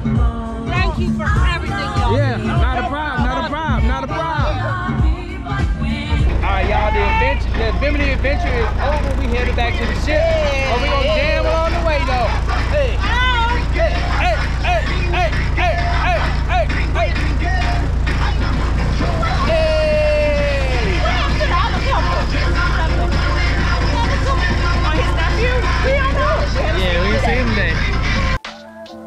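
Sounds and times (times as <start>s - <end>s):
people talking: 0.7s - 4.8s, 6.2s - 28.4s
passengers chattering: 1.5s - 4.8s, 5.9s - 28.4s
tram engine rumbling: 5.9s - 28.4s.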